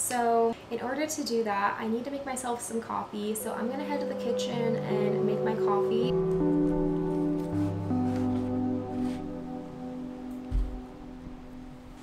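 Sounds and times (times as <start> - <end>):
slow music with held notes: 3.4 - 12.0
short low thump: 10.5 - 10.9.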